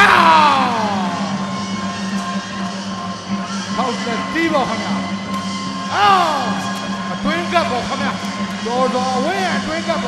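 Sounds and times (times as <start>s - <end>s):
person shouting: 0.0s - 1.3s, 5.9s - 6.6s
steady ringside music: 0.0s - 10.0s.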